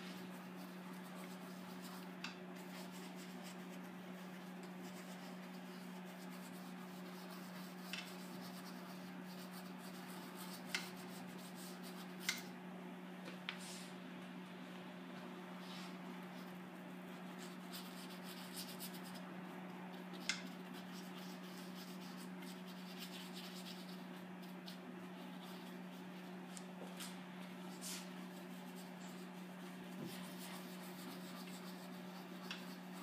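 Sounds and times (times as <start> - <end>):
paintbrush scratching on canvas: 0.0 - 12.5, 15.6 - 19.2, 19.9 - 26.4, 27.6 - 33.0
steady low hum: 0.0 - 33.0.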